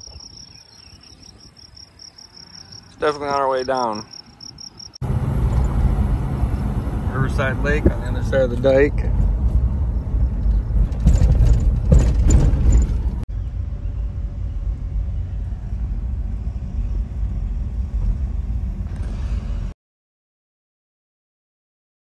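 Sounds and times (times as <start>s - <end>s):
steady low rumble: 4.8s - 19.7s.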